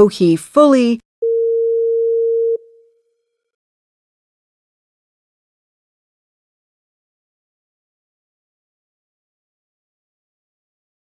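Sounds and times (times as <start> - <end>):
electronic beep: 1.2 - 2.8.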